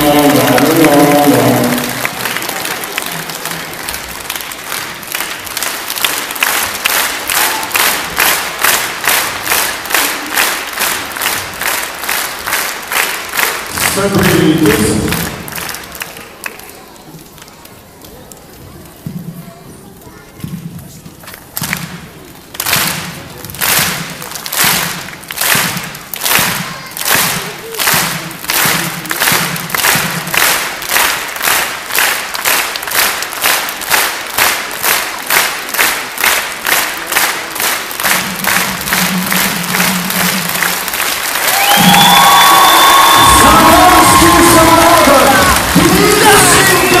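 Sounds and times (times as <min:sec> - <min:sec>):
applause and cheering: 0:00.0 - 0:18.2, 0:22.5 - 0:47.0
audience clapping in unison: 0:00.0 - 0:18.6, 0:21.2 - 0:47.0
band music: 0:41.6 - 0:47.0.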